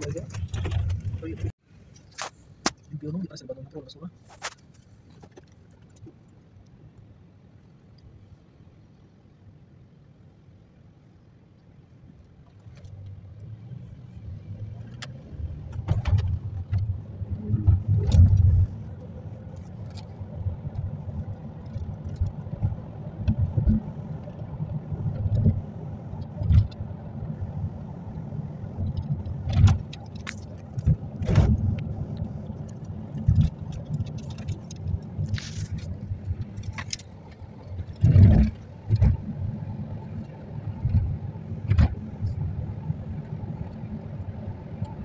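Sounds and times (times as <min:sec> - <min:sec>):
knocks and cabin rattles: 0:00.0 - 0:01.5, 0:15.6 - 0:17.0
car road and engine rumble: 0:00.0 - 0:45.0.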